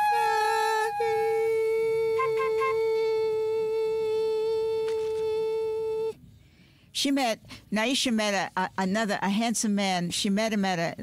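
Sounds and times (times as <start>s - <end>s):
woman humming a steady note: 0.0s - 6.2s.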